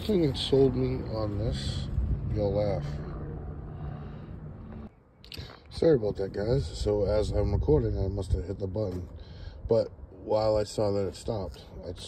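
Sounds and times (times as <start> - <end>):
low background rumble: 0.0 - 5.0.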